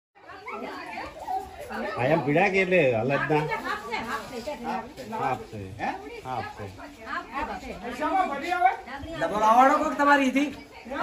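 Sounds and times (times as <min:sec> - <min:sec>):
people talking at once: 0:00.2 - 0:11.0.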